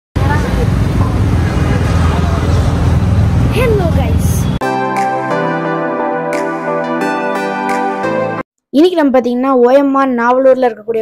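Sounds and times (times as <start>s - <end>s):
road traffic rumble inside car: 0.2s - 4.6s.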